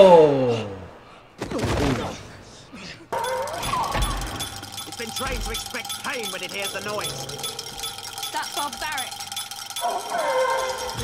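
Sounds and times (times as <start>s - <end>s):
metallic rattling: 3.2s - 11.0s
speech: 8.4s - 9.2s.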